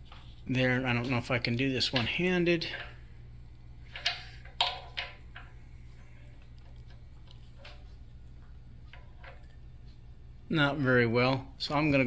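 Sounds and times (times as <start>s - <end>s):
steady low hum: 0.0s - 12.0s
metallic clicks and knocks: 3.9s - 5.5s.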